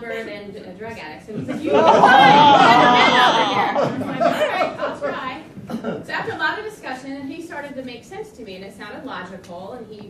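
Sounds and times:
people chattering: 0:00.0 - 0:07.6
audience laughing: 0:01.4 - 0:06.1.

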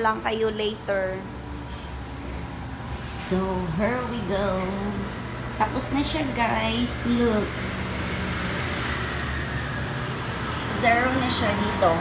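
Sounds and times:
laundry machines humming: 0:00.0 - 0:12.0.

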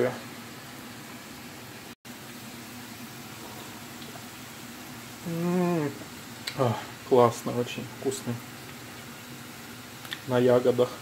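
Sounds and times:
potatoes sizzling in oil: 0:00.0 - 0:11.0.

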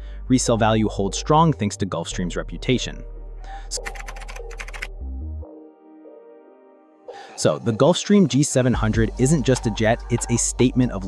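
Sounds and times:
background music with bass: 0:00.0 - 0:05.6, 0:07.4 - 0:11.0
keyboard typing: 0:03.7 - 0:04.9.

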